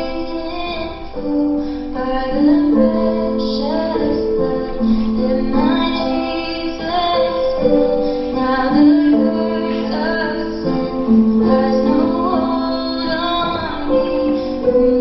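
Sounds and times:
instrumental accompaniment: 0.0s - 15.0s
woman singing: 0.0s - 15.0s.

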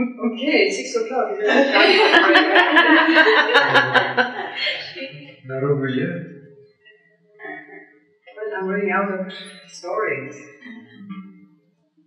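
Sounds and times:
woman laughing: 1.4s - 5.1s.

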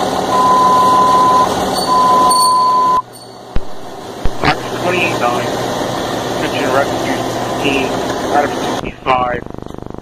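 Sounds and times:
fire engine humming: 0.0s - 10.0s
voice on dispatch radio: 4.4s - 5.6s, 6.4s - 9.4s.

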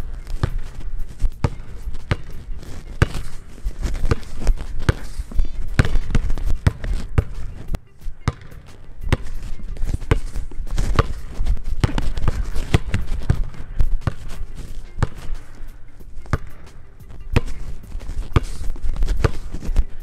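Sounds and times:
basketball dribbled on hardwood floor: 0.4s - 2.4s, 3.0s - 3.3s, 4.0s - 5.1s, 5.8s - 7.4s, 8.3s - 8.5s, 10.0s - 10.3s, 10.9s - 14.3s, 15.0s - 15.3s, 16.3s - 16.5s.

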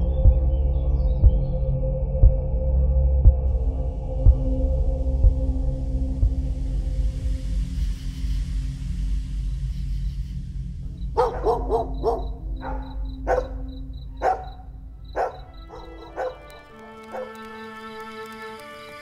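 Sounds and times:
low steady drone: 0.0s - 17.4s
music with sustained string notes: 0.0s - 19.0s
dog barking: 11.0s - 17.5s.

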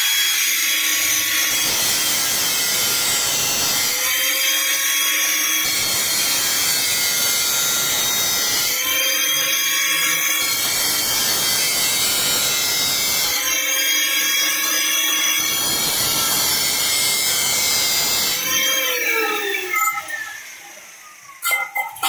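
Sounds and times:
angle grinder cutting metal pipe: 0.0s - 22.0s.

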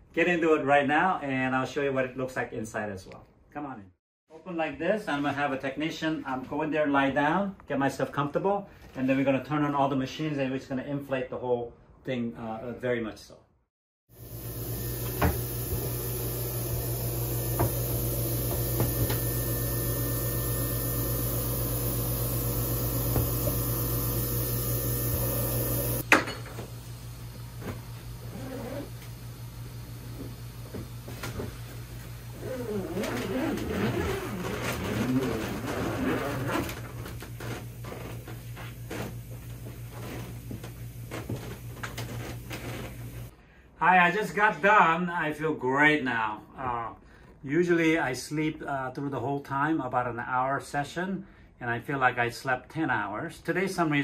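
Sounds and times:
machine humming with hiss: 14.2s - 34.4s
scraping and rustling: 32.5s - 39.2s.

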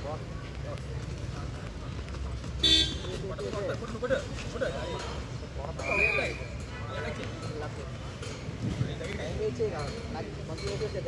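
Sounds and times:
horn toot: 2.6s - 3.1s.

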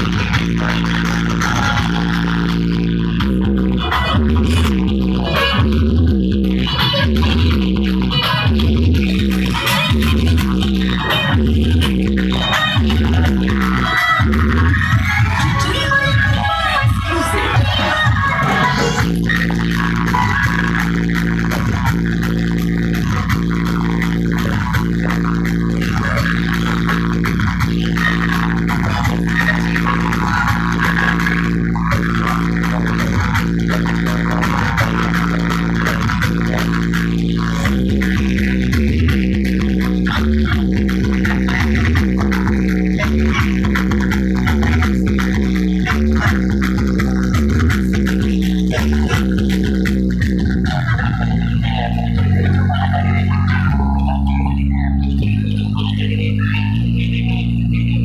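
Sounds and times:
loud dance music with deep bass: 0.0s - 58.0s.

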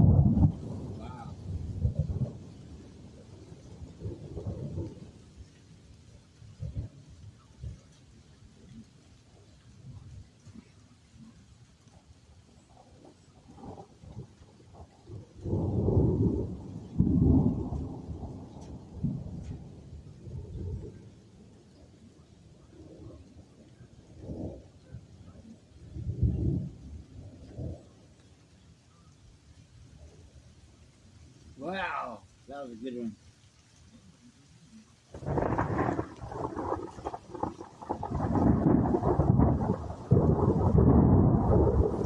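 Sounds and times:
thunder rumbling: 0.0s - 5.9s, 12.5s - 28.2s, 35.1s - 42.0s
light rain: 0.0s - 42.0s.

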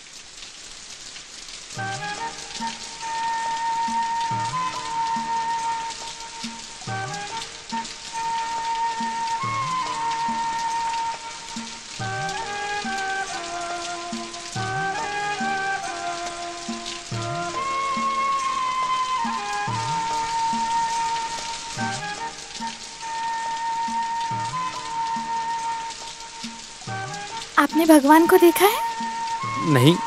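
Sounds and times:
steady rain hiss: 0.0s - 30.0s.

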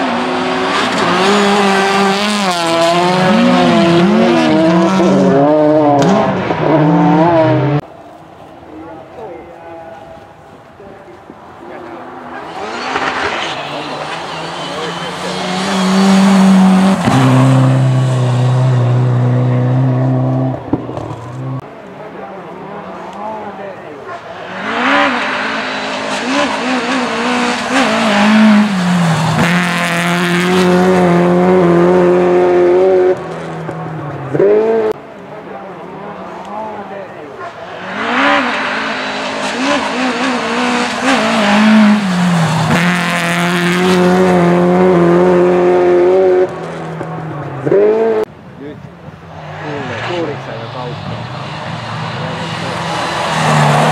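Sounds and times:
rally car engines revving high: 0.0s - 7.9s, 12.0s - 21.7s, 22.5s - 35.0s, 35.7s - 48.3s, 49.1s - 53.9s.

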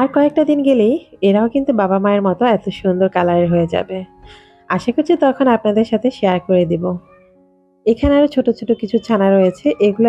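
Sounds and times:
woman speaking: 0.0s - 7.2s, 7.9s - 10.0s
soft background music: 0.0s - 10.0s.

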